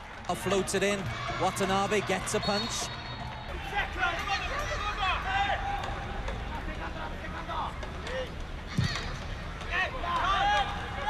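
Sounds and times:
stadium crowd noise: 0.0s - 11.0s.

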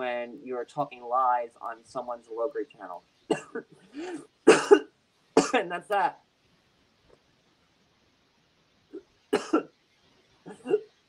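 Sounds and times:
person coughing: 3.3s - 5.7s, 9.4s - 9.7s, 10.5s - 10.9s.

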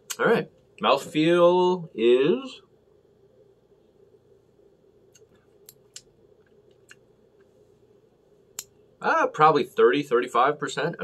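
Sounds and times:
mouth clicks and smacks: 0.0s - 0.2s, 5.0s - 7.5s
faint steady hum: 0.0s - 11.0s.

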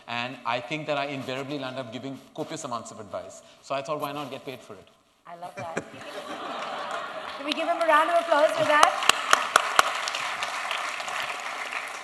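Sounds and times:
audience applauding: 6.0s - 12.0s.

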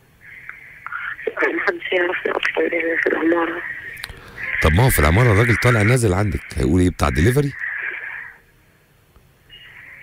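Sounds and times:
woman speaking over telephone: 0.9s - 3.8s.

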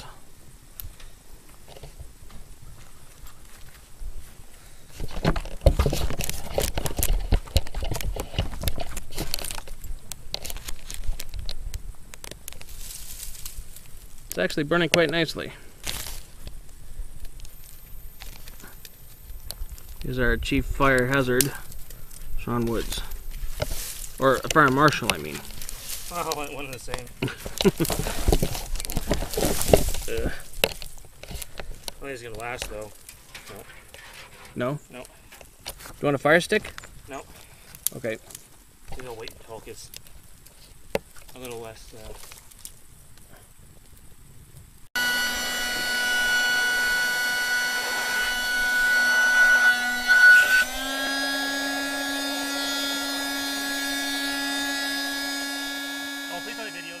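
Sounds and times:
dry twigs snapping: 5.4s - 14.4s, 15.8s - 20.1s, 23.1s - 33.2s, 36.7s - 43.2s
person laughing: 27.2s - 28.2s
air pump motor whine: 45.0s - 57.0s.

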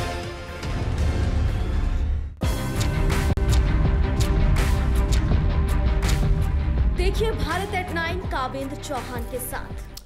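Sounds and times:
news theme music with deep bass: 0.0s - 9.9s.

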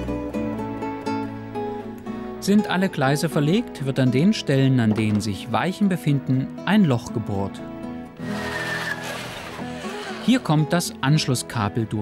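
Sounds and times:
soft guitar music: 0.0s - 12.0s
electric drill boring through board: 8.2s - 10.6s.

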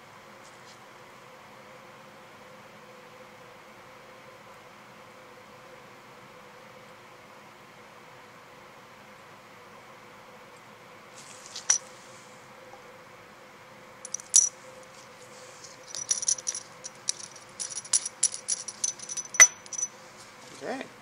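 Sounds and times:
lab glassware clinking: 14.1s - 14.5s, 15.7s - 19.9s.

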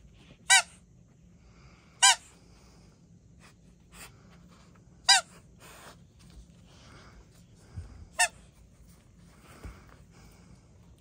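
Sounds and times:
dog toy squeak: 0.4s - 0.8s, 5.1s - 5.3s.

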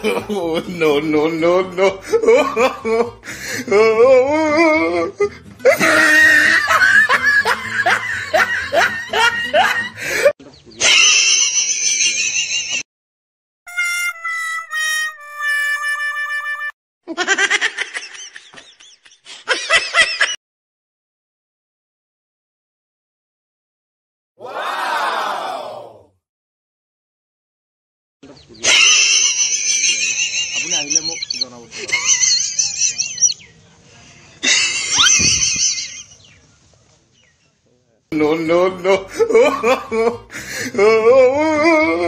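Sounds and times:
person laughing in whoops: 3.7s - 12.3s, 34.4s - 35.8s
high reedy music: 13.7s - 16.8s
mouse squealing: 30.5s - 31.5s.

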